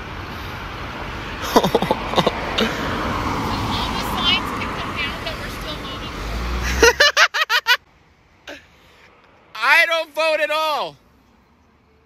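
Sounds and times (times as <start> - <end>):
vehicle passing close rumble: 0.0 - 7.2
cars passing: 0.0 - 12.0
people laughing: 1.4 - 2.8, 6.6 - 7.8.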